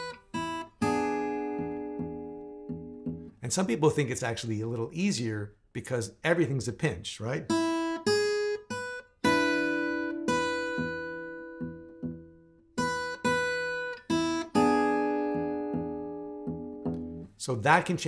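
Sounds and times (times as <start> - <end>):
fingerstyle acoustic guitar blues: 0.0 - 3.4, 7.5 - 17.4.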